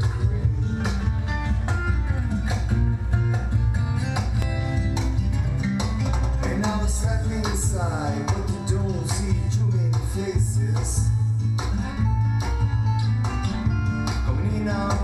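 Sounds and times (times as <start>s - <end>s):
fingerpicked acoustic guitar: 0.0s - 15.0s
low bass: 0.0s - 15.0s
man singing: 6.3s - 12.1s, 14.0s - 15.0s.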